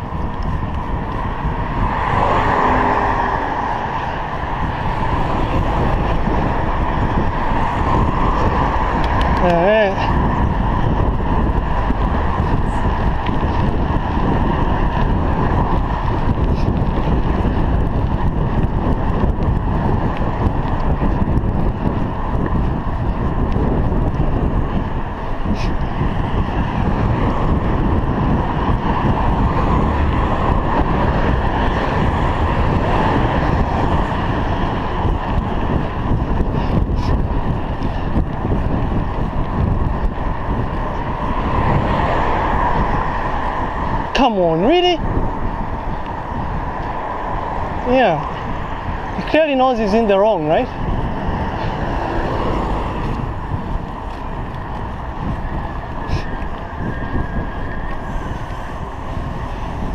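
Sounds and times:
traffic noise: 0.0s - 59.9s
wind rushing over microphone: 0.0s - 59.9s.

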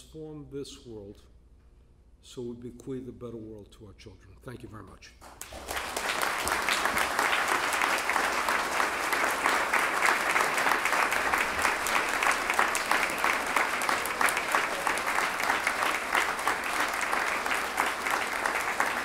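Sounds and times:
large audience applauding: 5.2s - 19.0s.

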